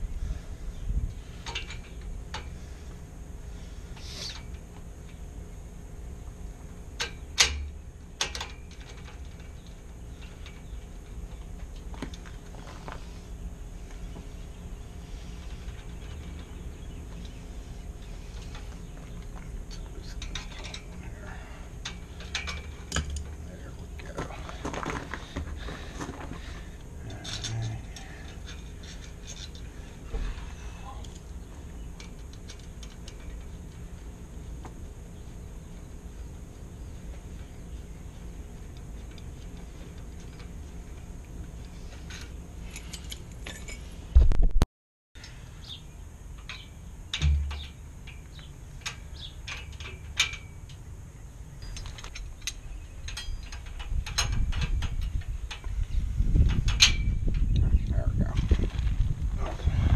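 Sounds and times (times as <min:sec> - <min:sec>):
low steady rumble: 0:00.0 - 0:44.5, 0:45.2 - 0:59.9.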